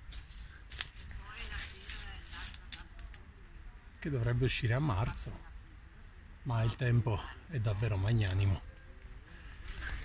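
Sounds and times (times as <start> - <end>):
leaves rustling: 0.0 - 5.8, 7.7 - 10.0
faint distant voices: 0.0 - 10.0.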